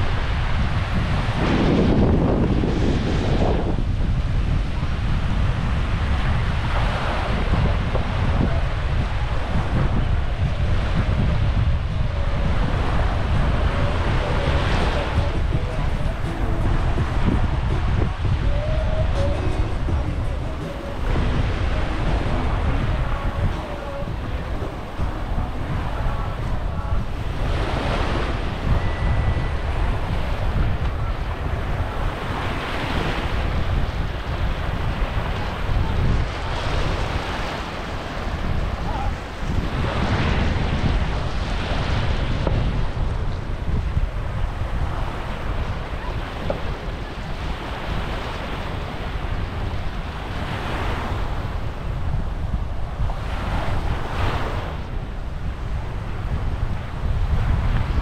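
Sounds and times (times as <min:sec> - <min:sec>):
sea waves breaking on sand: 0:00.0 - 0:58.0
wind rumble on microphone: 0:00.0 - 0:58.0.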